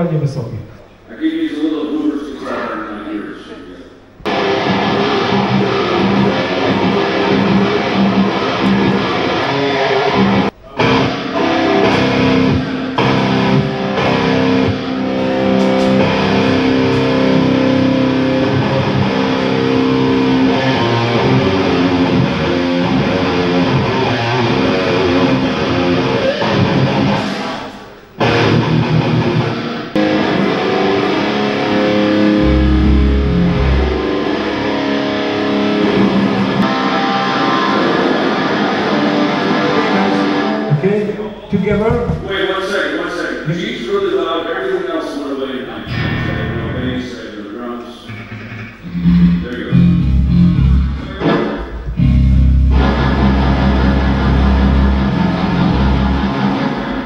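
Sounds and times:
heavy metal band playing: 0:04.3 - 0:27.5, 0:28.2 - 0:40.8, 0:45.9 - 0:47.2, 0:48.2 - 0:57.0
heavy deep bass notes: 0:30.0 - 0:36.7, 0:45.9 - 0:47.2, 0:48.1 - 0:57.0.

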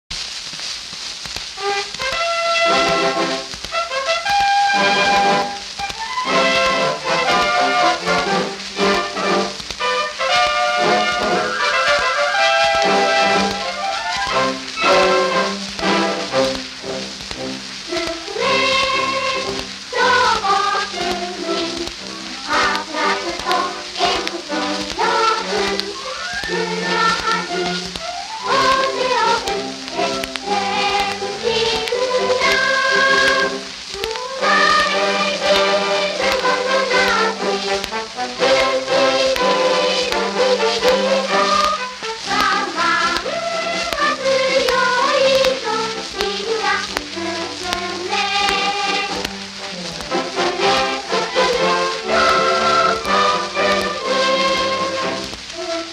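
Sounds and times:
record surface crackle: 0:00.0 - 0:55.9
children's choir singing: 0:01.6 - 0:55.9
orchestral accompaniment: 0:01.6 - 0:55.9.

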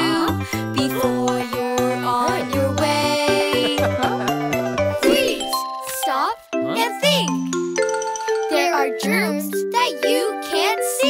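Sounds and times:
children's voices singing: 0:00.0 - 0:07.3
bright children's music: 0:00.0 - 0:11.0.

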